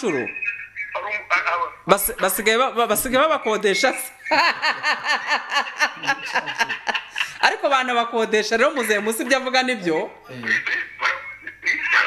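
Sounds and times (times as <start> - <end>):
voice over telephone line: 0.0 - 2.4, 9.9 - 12.0.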